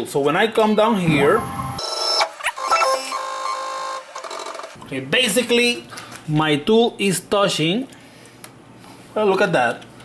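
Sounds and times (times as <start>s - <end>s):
drive motor whining: 1.1s - 4.8s.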